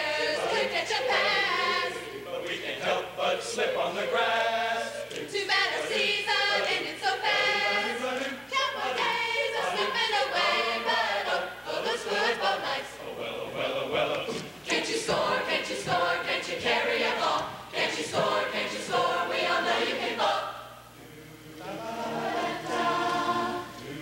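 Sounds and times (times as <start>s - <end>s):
mixed choir singing: 0.0s - 24.0s.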